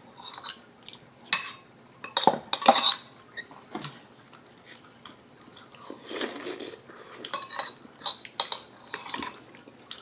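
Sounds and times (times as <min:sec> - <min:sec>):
cutlery clinking on ceramic bowls: 0:00.2 - 0:03.1, 0:07.3 - 0:09.4.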